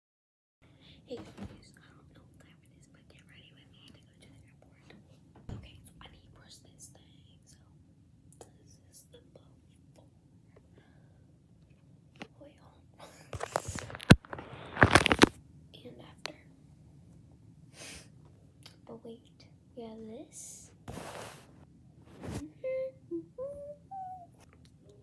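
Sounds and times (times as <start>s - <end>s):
girl whispering: 0.8s - 7.7s, 8.4s - 10.0s, 12.3s - 13.8s, 15.8s - 16.5s, 22.4s - 25.0s.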